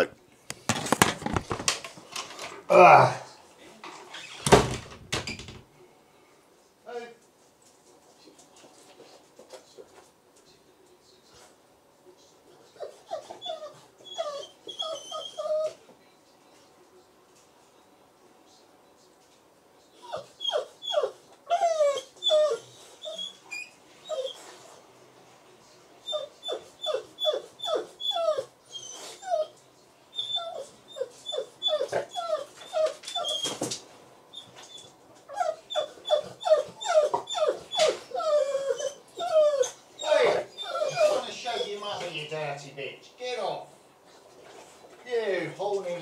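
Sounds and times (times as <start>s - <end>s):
dog whining: 12.8s - 15.8s, 19.9s - 24.6s, 26.0s - 33.7s, 34.3s - 42.3s.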